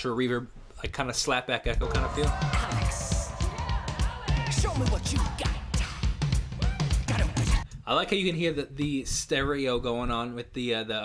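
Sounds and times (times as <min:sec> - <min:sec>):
drum kit beat: 0:01.8 - 0:07.7.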